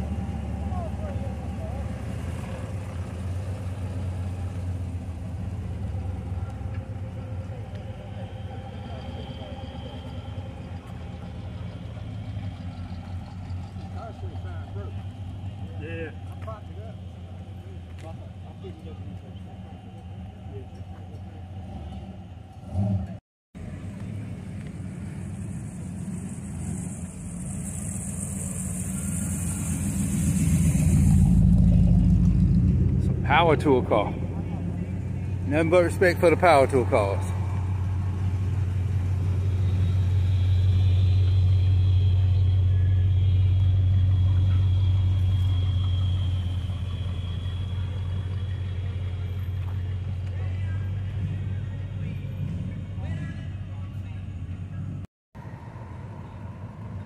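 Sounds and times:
car engine driving up close: 0.0 - 57.0
car engines rumbling: 0.0 - 57.0.

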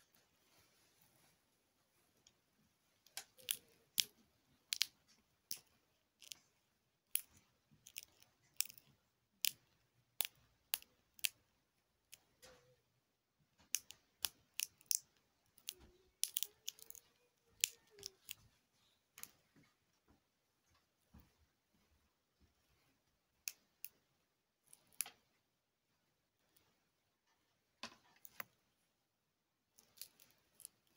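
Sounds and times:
glow sticks cracking and snapping: 3.0 - 11.4, 13.6 - 18.4, 29.7 - 30.9.

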